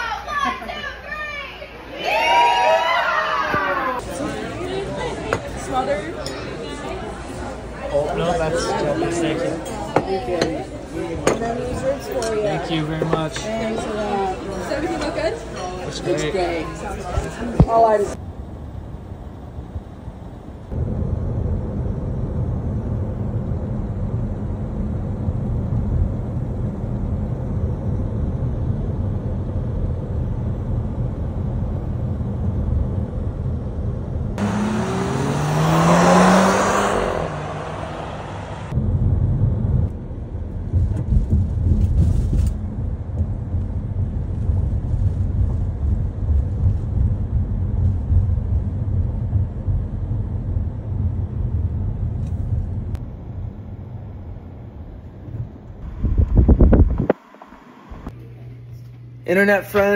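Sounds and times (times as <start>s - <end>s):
road and engine noise in car: 3.9s - 58.2s
engine note rising in pitch: 34.4s - 39.9s.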